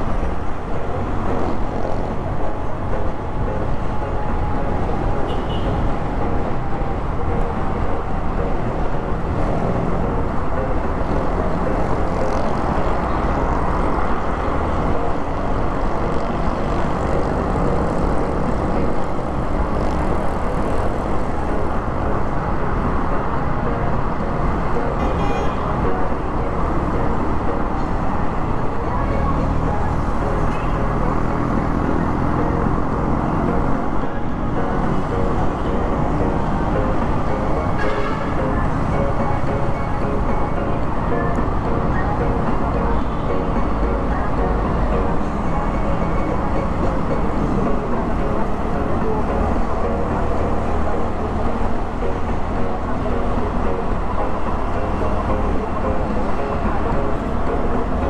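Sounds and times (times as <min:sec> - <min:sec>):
road and wind noise: 0:00.0 - 0:58.0
surrounding traffic: 0:00.0 - 0:58.0.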